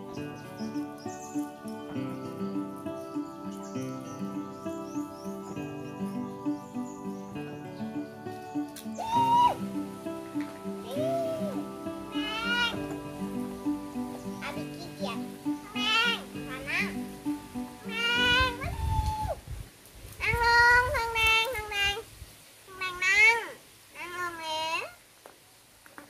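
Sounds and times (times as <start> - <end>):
animal whining: 8.9 - 12.9.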